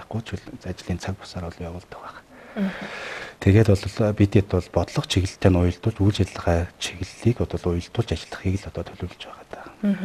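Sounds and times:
man talking: 0.0 - 2.2, 3.0 - 10.0.

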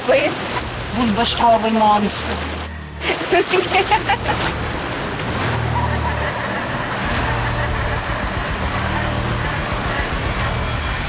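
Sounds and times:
bubbling water rushing: 0.0 - 11.0
low pump hum: 0.0 - 11.0.

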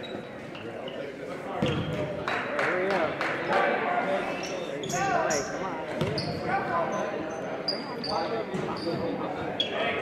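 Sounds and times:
indistinct chatter in gym: 0.0 - 10.0.

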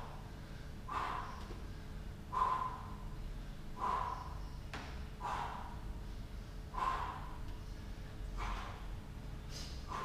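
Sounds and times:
man's forceful breaths out: 0.0 - 10.0.

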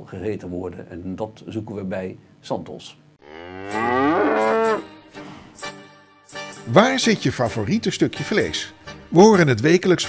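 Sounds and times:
cow mooing: 3.2 - 5.0.

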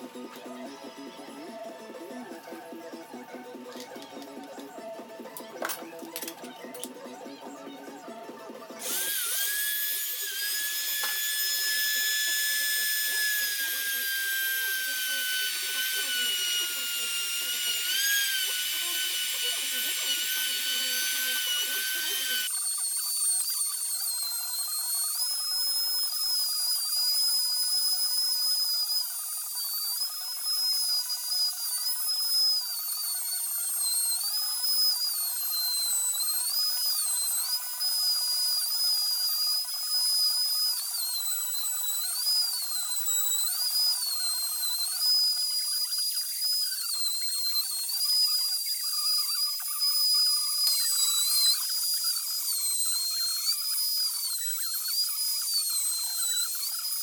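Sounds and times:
trim router high-pitched whine: 0.0 - 57.0.

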